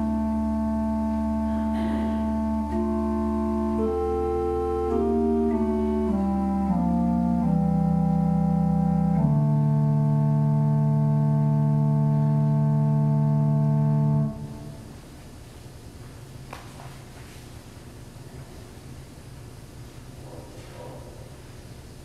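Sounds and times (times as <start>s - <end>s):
organ playing sustained chords: 0.0s - 20.3s.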